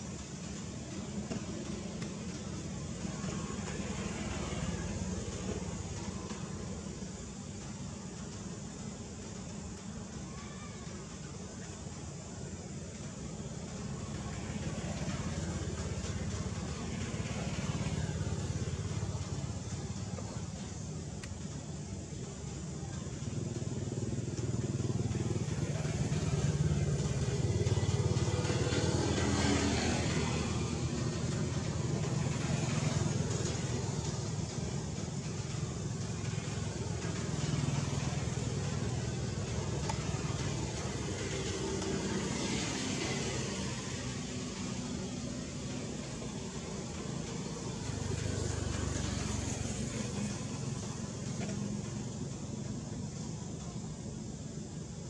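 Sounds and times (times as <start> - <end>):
motor vehicles passing: 13.6 - 55.0.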